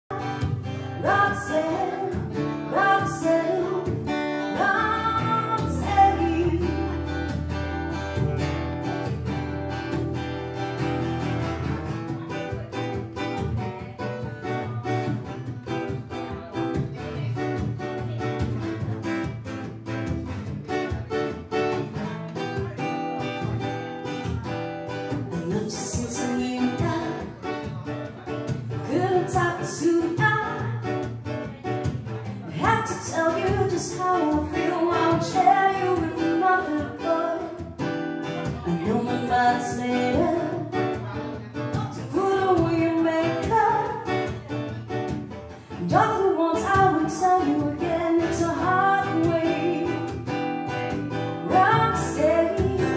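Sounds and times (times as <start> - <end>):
woman singing: 0.1 - 8.0, 24.0 - 52.9
strummed acoustic guitar: 0.1 - 52.9.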